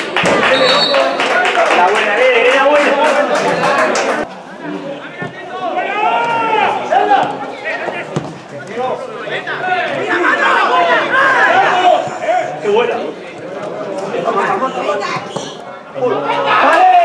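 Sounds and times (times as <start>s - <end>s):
people talking and calling out: 0.0s - 17.0s.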